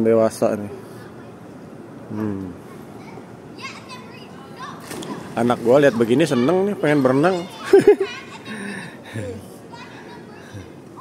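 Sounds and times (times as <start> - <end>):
outdoor background hum: 0.0 - 11.0
children calling out: 2.7 - 11.0.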